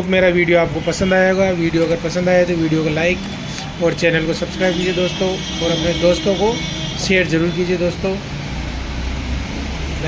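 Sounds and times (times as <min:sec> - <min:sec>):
person speaking: 0:00.0 - 0:08.3.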